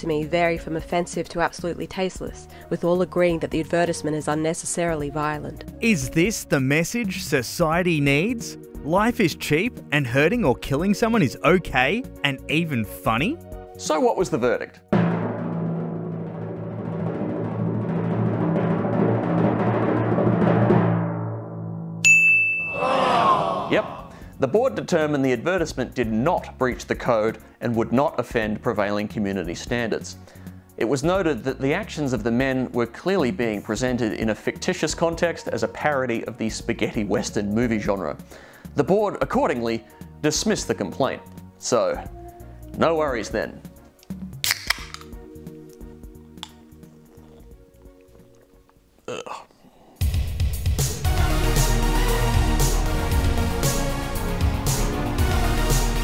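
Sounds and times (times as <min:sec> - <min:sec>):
background music with held tones: 0:00.0 - 0:21.1, 0:22.0 - 0:49.3, 0:50.0 - 0:56.0
timpani drum build-up: 0:14.9 - 0:22.0, 0:50.0 - 0:56.0
bell ding: 0:22.0 - 0:23.1
drink can cracked open: 0:44.0 - 0:45.2.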